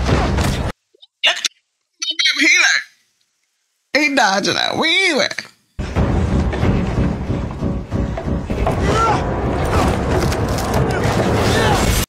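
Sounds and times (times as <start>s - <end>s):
low rumbling din: 5.8s - 12.0s
people shouting: 8.6s - 12.0s.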